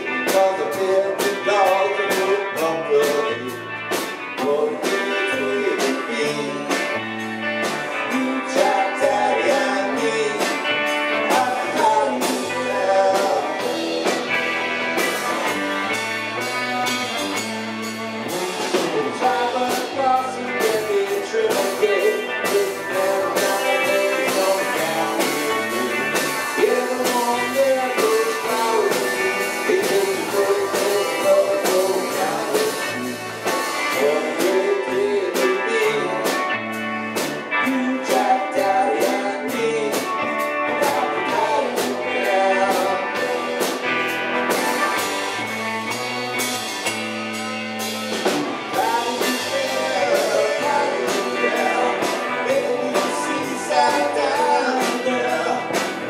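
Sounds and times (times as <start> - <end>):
live rock band: 0.0 - 56.0.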